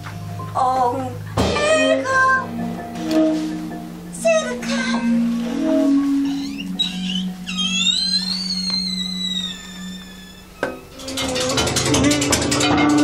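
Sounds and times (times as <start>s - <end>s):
low held note: 1.5s - 4.1s
sliding high note: 1.6s - 11.1s.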